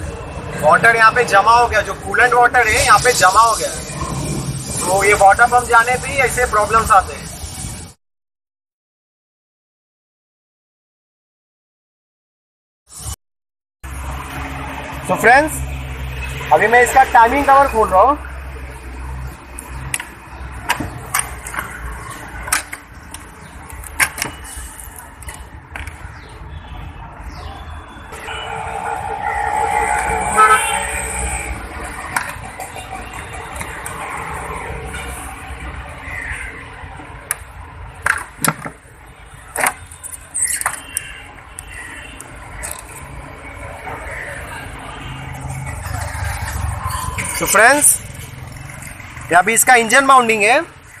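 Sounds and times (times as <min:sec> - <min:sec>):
background voices: 0:28.2 - 0:32.8.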